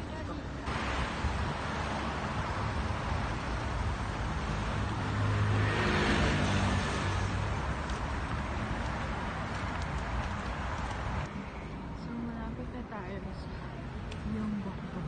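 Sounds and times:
road traffic: 0.0 - 15.0
vehicle passing close: 0.7 - 11.3.

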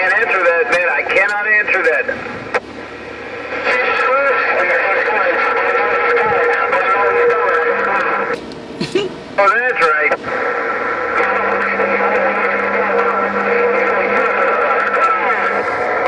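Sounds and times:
garbled radio voices: 0.0 - 16.0
static hiss burst: 9.4 - 16.0
low steady tone: 10.3 - 16.0
warbling squeal: 10.7 - 16.0.

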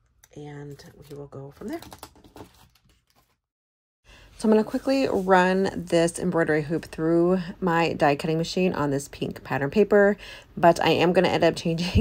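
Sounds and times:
plastic packaging crinkling: 1.0 - 3.4.

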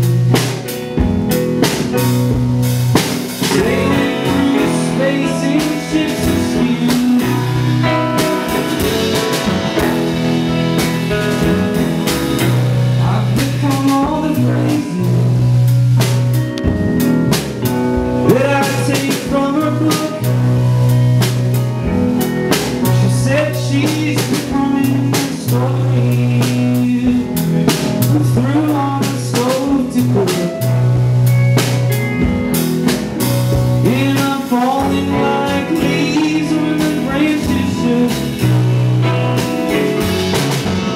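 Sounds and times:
drum kit beat: 0.0 - 40.9
electric bass low notes: 0.0 - 40.9
electric guitar: 0.0 - 40.9.

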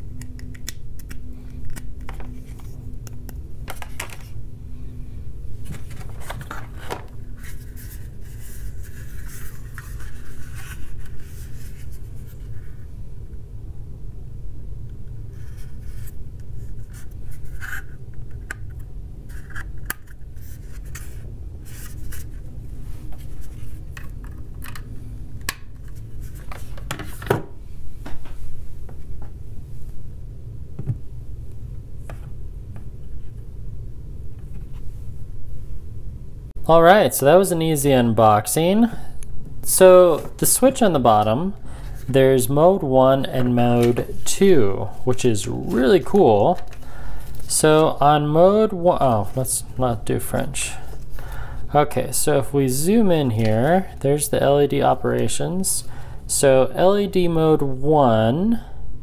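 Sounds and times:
steady low hum: 0.0 - 59.0
plastic charging pad handled: 0.2 - 4.4, 5.6 - 12.7, 23.1 - 27.4, 46.5 - 47.9.

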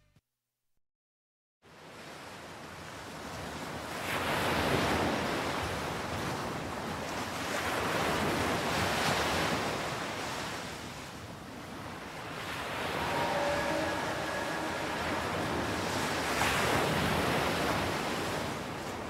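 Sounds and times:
ocean surf washing in: 11.5 - 19.0.

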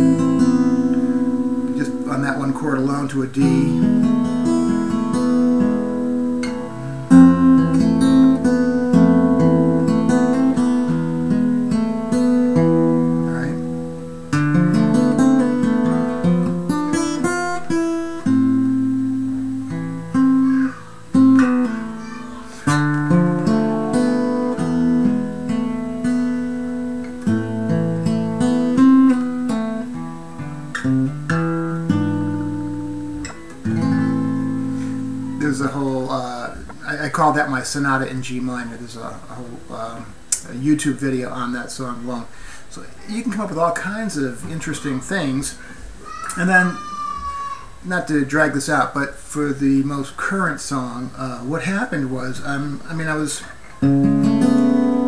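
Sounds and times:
solo acoustic guitar piece: 0.0 - 46.7, 47.7 - 55.0.

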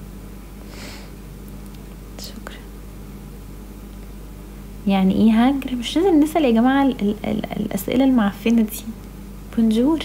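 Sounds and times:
steady low hum: 0.0 - 10.0
woman whispering: 2.2 - 2.8.

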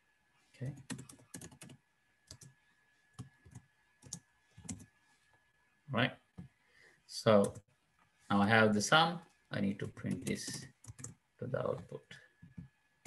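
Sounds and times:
typing on computer keyboard: 0.8 - 2.5, 10.0 - 11.2.

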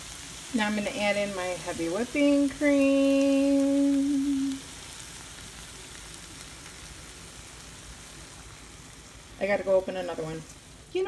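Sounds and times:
food sizzling in a skillet: 0.0 - 11.0.

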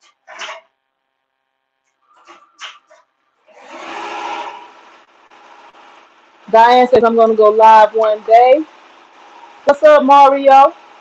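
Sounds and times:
embroidery machine motor whine: 3.4 - 11.0.

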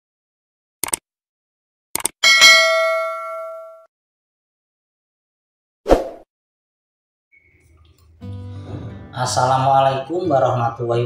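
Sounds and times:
quick clicks: 0.8 - 1.0, 2.0 - 2.2
notification bell ding: 2.2 - 3.9.

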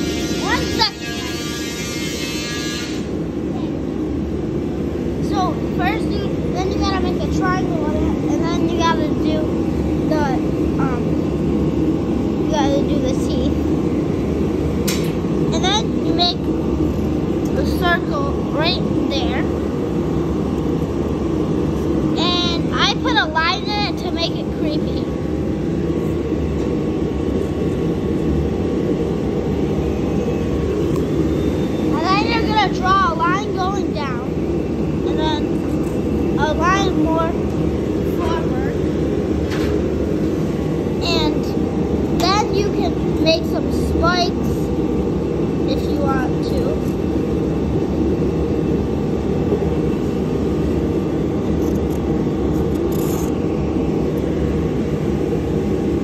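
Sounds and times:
high-pitched voices calling out: 0.0 - 1.9, 31.8 - 34.4, 36.4 - 37.4.

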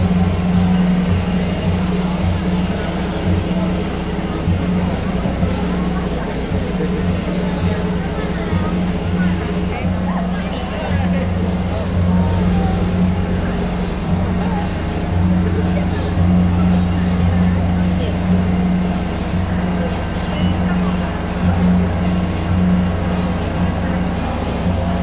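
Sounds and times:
crowd chatter: 0.0 - 25.0.

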